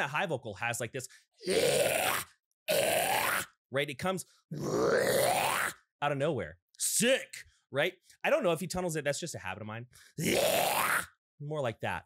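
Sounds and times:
man screaming: 1.4 - 3.5, 4.5 - 5.8, 10.2 - 11.1.

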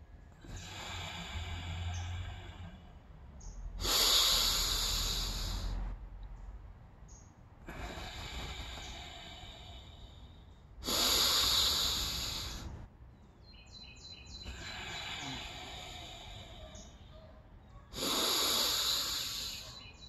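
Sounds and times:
man breathing deeply: 0.0 - 6.1, 7.6 - 12.9, 14.3 - 17.3, 17.9 - 20.0.

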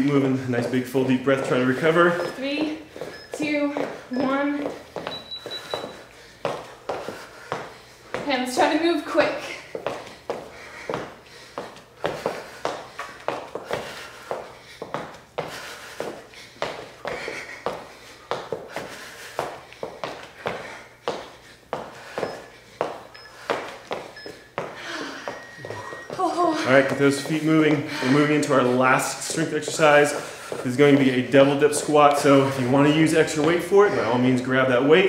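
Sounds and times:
footfalls on hard floor: 0.0 - 8.8, 9.4 - 34.1.

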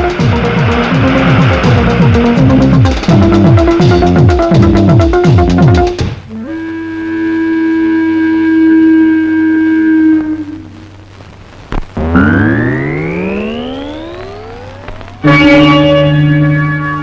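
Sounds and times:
rising pitch glide: 12.0 - 17.0.

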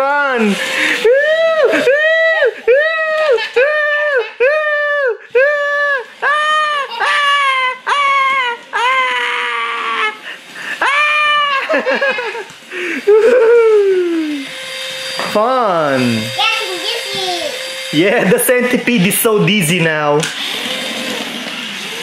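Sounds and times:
high-pitched mock crying: 0.9 - 14.5.

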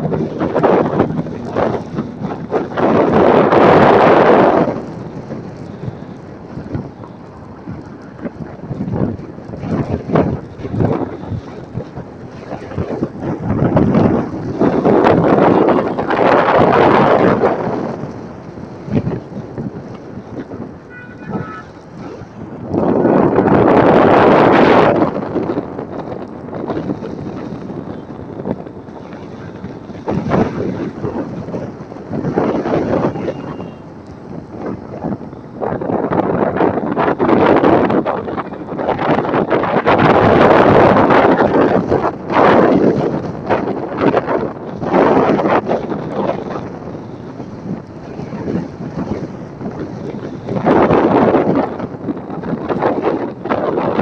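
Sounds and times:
road and traffic noise: 0.0 - 54.0
wind buffeting microphone: 0.0 - 54.0.

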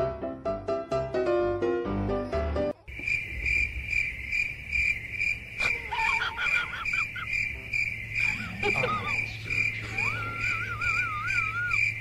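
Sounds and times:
piano music: 0.0 - 2.8
cricket chirping: 2.0 - 12.0.

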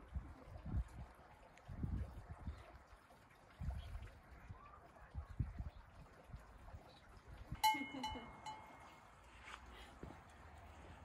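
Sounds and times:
goat collar bell clanking: 7.6 - 9.0.

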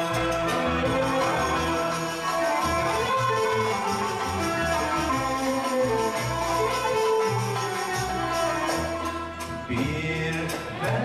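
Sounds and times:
classical music ensemble playing: 0.0 - 11.0
double bass line: 0.0 - 11.0
plucked and bowed strings: 0.0 - 11.0.

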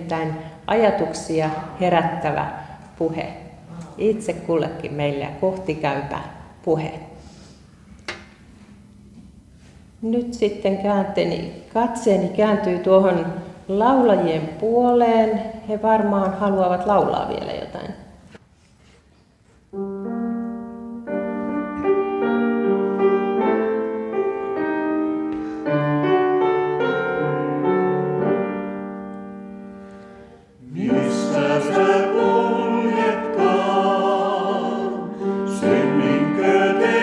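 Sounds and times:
piano: 19.7 - 37.0
vocal quartet singing in harmony: 30.6 - 37.0.

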